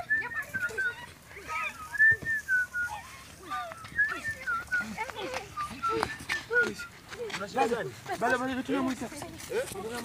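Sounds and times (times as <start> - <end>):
person whistling: 0.0 - 7.2.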